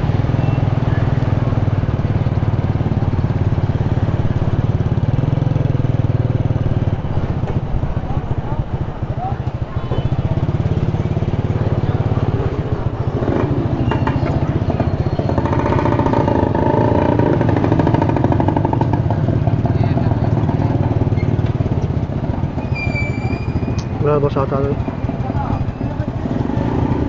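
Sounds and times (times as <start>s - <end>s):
motorcycle engine rumbling: 0.0s - 27.0s
second motorcycle engine: 0.0s - 27.0s.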